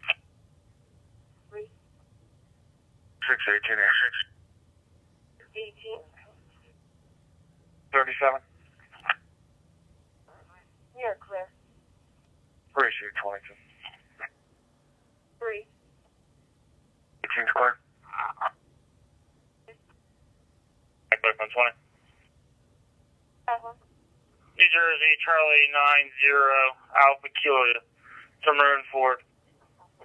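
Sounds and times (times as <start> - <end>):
faint low hum: 0.0 - 30.0
police radio voice through speaker: 3.2 - 4.2, 21.1 - 21.7, 24.6 - 27.8
vocoded radio voice: 3.2 - 4.3, 8.0 - 9.2, 12.8 - 14.3, 17.2 - 18.5, 21.1 - 21.7, 24.6 - 29.2.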